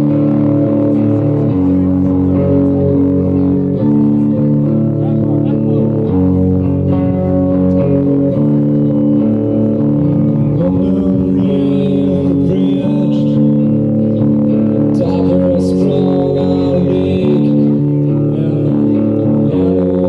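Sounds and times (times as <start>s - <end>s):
bass guitar: 0.0s - 20.0s
live rock band playing: 0.0s - 20.0s
sustained guitar chords: 0.0s - 20.0s.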